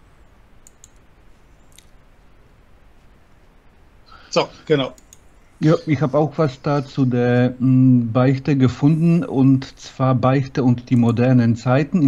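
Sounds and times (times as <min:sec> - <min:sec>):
low steady hum: 0:00.0 - 0:12.0
computer mouse clicks: 0:00.6 - 0:01.1, 0:04.9 - 0:05.3.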